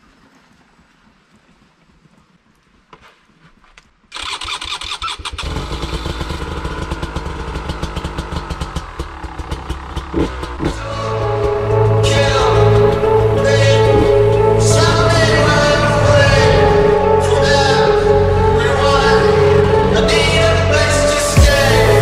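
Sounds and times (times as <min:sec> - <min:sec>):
motorcycle engine starting and running: 0:04.1 - 0:22.0.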